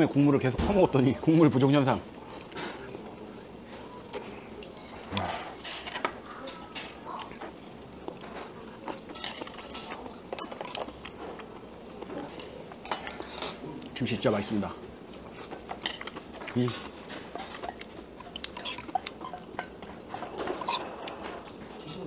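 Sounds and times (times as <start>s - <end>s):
low room murmur: 0.0s - 22.0s
spoons and chopsticks clinking on bowls: 4.0s - 14.2s, 15.2s - 22.0s.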